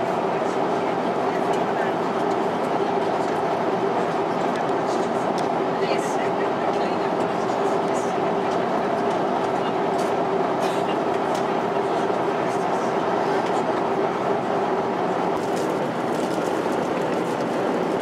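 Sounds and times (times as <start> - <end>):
airplane cabin airflow and engine noise: 0.0 - 18.0.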